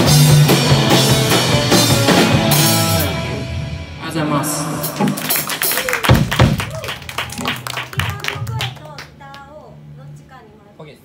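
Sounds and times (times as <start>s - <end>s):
rock band final chord: 0.0s - 6.6s
audience clapping: 4.8s - 9.6s.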